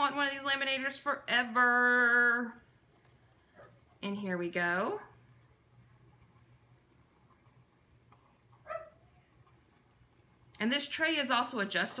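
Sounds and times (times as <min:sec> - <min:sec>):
laminator hum: 0:00.0 - 0:12.0
pet whining: 0:08.6 - 0:09.3.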